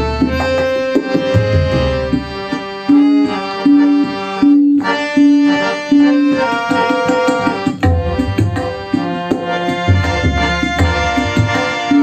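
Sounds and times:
harmonium playing film music: 0.0s - 12.0s.

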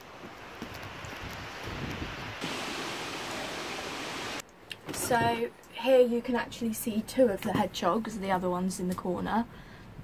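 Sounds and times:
strong wind blowing: 0.6s - 4.4s.

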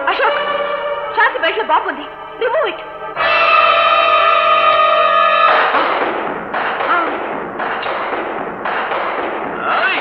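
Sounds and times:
echoing gunshots: 5.2s - 10.0s.

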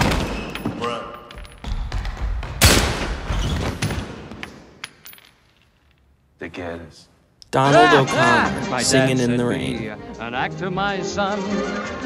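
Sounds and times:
gunshot echoing in gymnasium: 2.4s - 4.3s.

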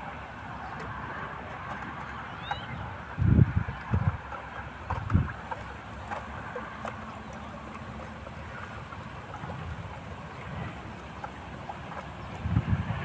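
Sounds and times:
wind rumble on microphone: 0.0s - 13.0s
wooden stick stirring water in bucket: 3.0s - 13.0s.

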